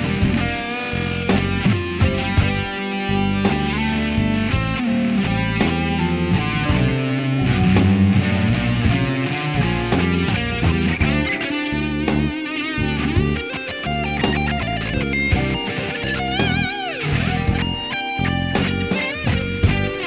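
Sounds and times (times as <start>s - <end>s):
electric guitar lead: 0.0s - 20.0s.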